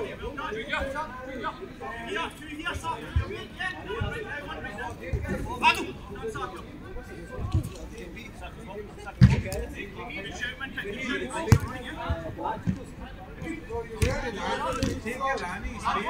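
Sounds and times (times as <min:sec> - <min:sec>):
players calling out: 0:00.0 - 0:16.0
football kick thuds: 0:14.0 - 0:15.0.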